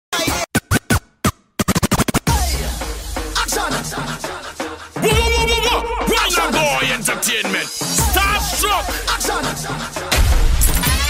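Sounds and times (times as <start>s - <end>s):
choppy music stabs: 0.1s - 11.0s
turntable scratching: 0.2s - 2.5s.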